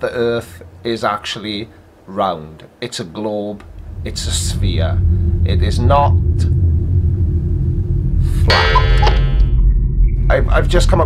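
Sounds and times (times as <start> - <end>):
low bass drone: 3.6 - 11.0.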